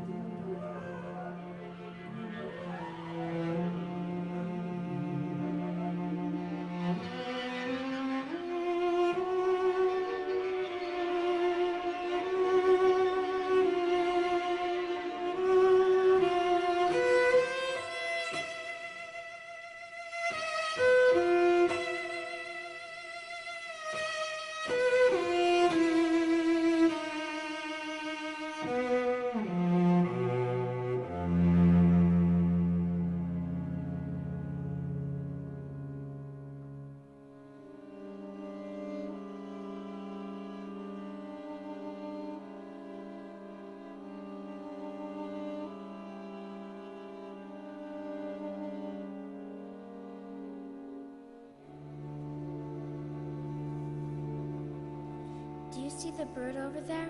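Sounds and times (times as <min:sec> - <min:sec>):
string ensemble sustained notes: 0:00.0 - 0:57.0.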